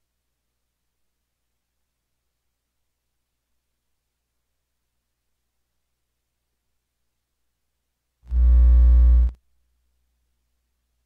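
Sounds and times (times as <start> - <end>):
loud low buzzing tone: 8.3 - 9.4.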